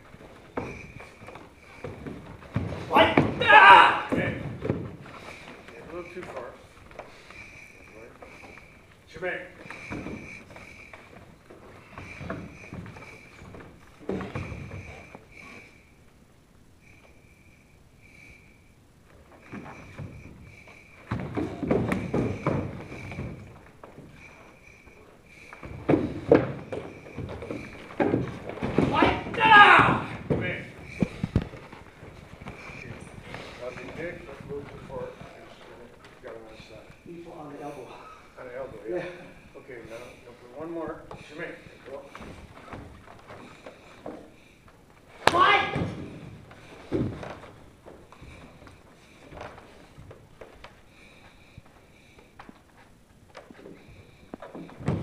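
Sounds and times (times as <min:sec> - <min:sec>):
bare feet on wooden floor: 0:00.0 - 0:16.2, 0:16.9 - 0:38.4, 0:39.9 - 0:55.0.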